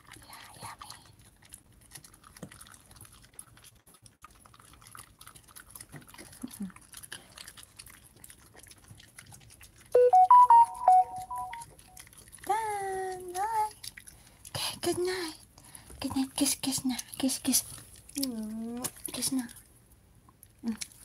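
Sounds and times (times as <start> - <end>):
dogs chewing treats: 0.0 - 21.0
electronic jingle: 10.0 - 11.7.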